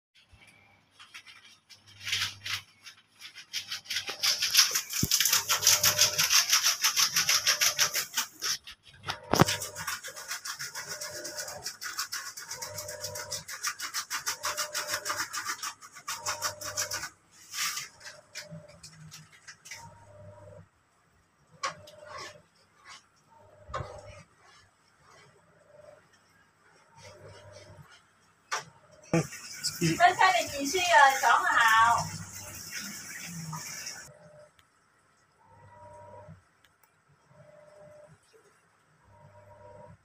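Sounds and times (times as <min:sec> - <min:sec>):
fast scratchy rubbing strokes: 0:01.0 - 0:19.3, 0:22.0 - 0:23.2, 0:26.6 - 0:28.2, 0:29.1 - 0:34.1.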